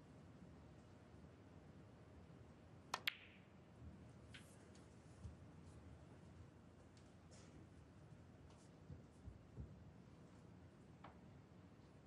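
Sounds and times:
cue ball clicking into ball: 3.0 - 3.4.

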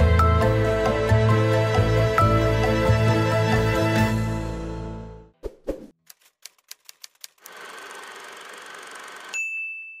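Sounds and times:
typewriter carriage whirr: 7.2 - 9.4
typewriter bell ding: 9.3 - 10.0.

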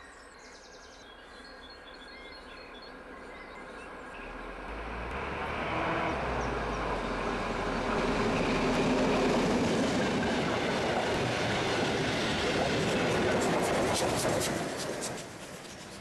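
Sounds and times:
train wheel and rail noise: 4.0 - 16.0
diesel locomotive engine under load: 4.2 - 16.0.

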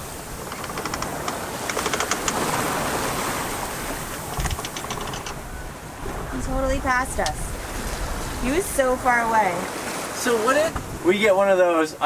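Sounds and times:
water rushing along a hull: 0.0 - 12.0
rapid clicking: 0.4 - 2.5, 4.3 - 5.4.

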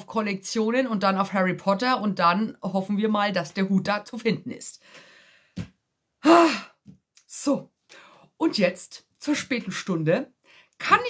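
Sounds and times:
faint breath: 4.8 - 5.6, 10.4 - 10.8
woman sighing: 6.2 - 6.8.

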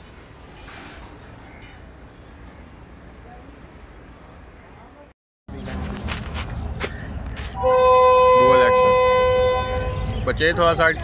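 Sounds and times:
diesel locomotive horn blast: 7.6 - 10.3.

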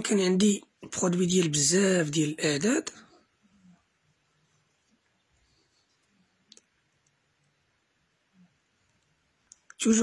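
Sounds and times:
man speaking: 0.0 - 3.1.

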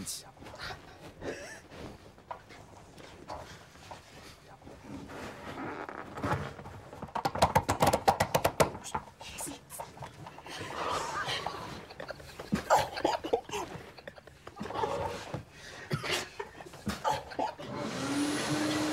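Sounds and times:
stifled laughter: 0.6 - 2.1, 10.4 - 17.8.

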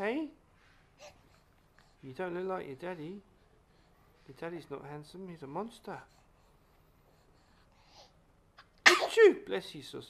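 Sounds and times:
infant sneezing: 8.6 - 9.4.

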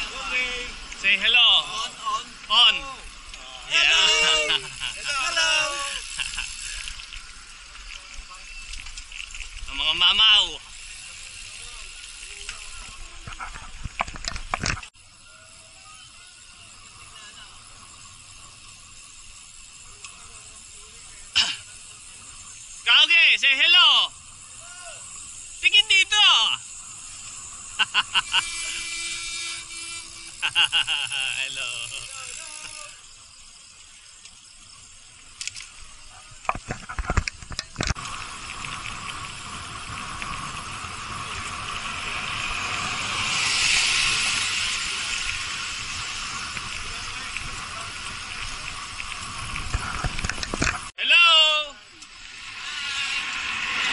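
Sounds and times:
wind and road noise: 0.0 - 15.2, 31.4 - 51.0, 51.8 - 53.9.

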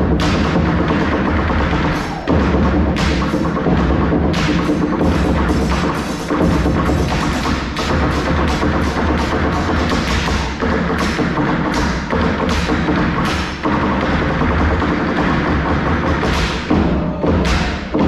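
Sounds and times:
group drumming in driving rhythm: 0.0 - 18.0
heavy low beat: 0.0 - 18.0
sharp repeated knocks: 0.0 - 18.0.

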